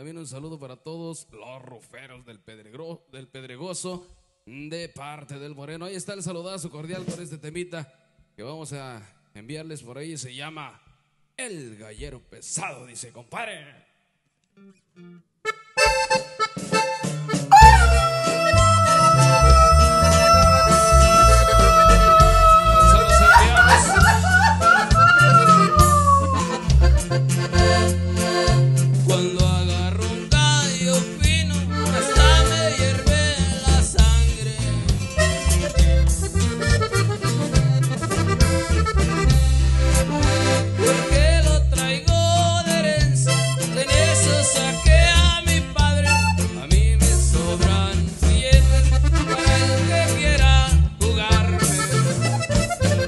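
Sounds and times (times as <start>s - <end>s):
accordion melody: 15.4s - 29.1s, 31.6s - 33.3s, 35.2s - 41.4s, 43.3s - 44.6s, 48.8s - 50.1s, 51.4s - 53.0s
accordion long note: 15.8s - 23.7s, 26.4s - 28.6s, 31.7s - 33.0s
guitar: 15.8s - 53.0s
bass and drums: 17.3s - 53.0s
heavy bass line: 17.6s - 24.1s, 26.4s - 27.9s
drums: 32.9s - 40.5s, 45.0s - 49.3s.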